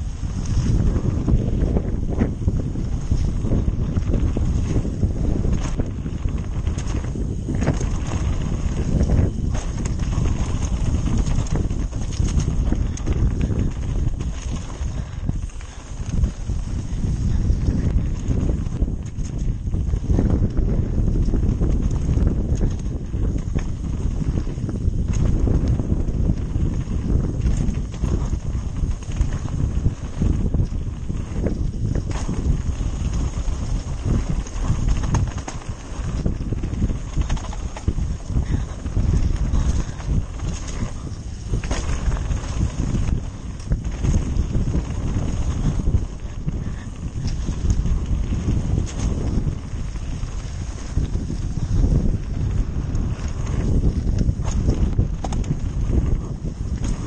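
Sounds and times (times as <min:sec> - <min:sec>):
bike rattling over bumps: 0:00.0 - 0:57.0
tyres and wind rumble: 0:00.0 - 0:57.0.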